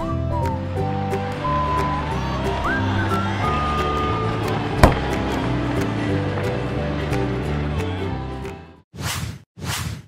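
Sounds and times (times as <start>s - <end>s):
background music: 0.0s - 8.8s.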